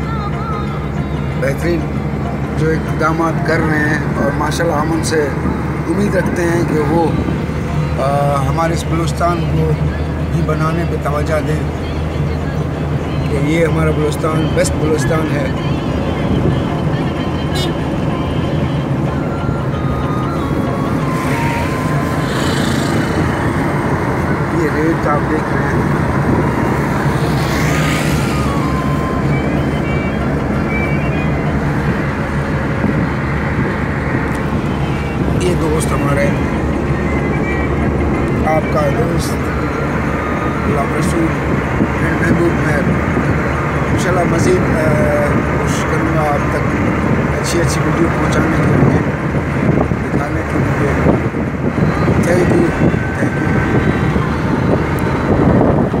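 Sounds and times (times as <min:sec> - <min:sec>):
car road and engine noise: 0:00.0 - 0:56.0
man talking: 0:01.4 - 0:01.9, 0:02.5 - 0:07.3, 0:07.9 - 0:11.8, 0:13.2 - 0:15.7, 0:21.1 - 0:26.0, 0:35.2 - 0:36.6, 0:38.4 - 0:43.0, 0:43.9 - 0:49.1, 0:50.0 - 0:51.1, 0:52.0 - 0:53.7.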